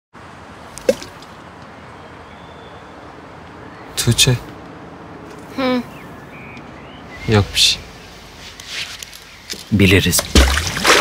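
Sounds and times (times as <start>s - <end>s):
steady background hiss: 0.2s - 10.4s.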